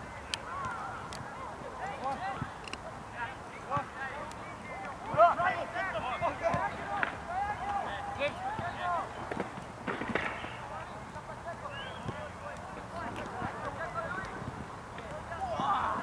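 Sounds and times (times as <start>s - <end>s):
players shouting: 0.1s - 16.0s.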